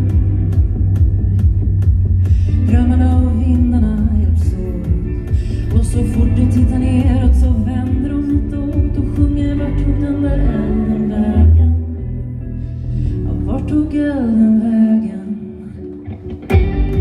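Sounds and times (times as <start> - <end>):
deep bass line: 0.0 - 14.6, 16.5 - 17.0
electric guitar: 0.0 - 17.0
woman singing: 2.2 - 12.4, 13.1 - 16.3.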